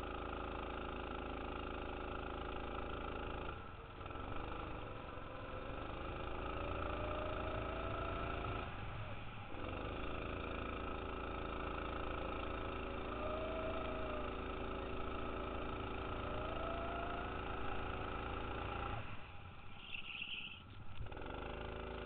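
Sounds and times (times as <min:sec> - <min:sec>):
go-kart engine at high revs: 0:00.0 - 0:22.0.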